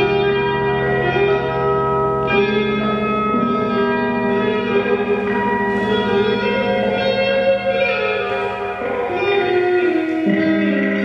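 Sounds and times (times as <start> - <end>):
ambient guitar and electronics: 0.0 - 11.0.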